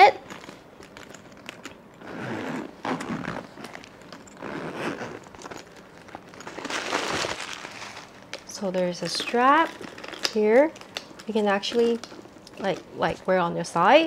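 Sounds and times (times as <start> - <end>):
zipper being pulled open: 2.0 - 8.1
paper crinkling: 5.4 - 8.4.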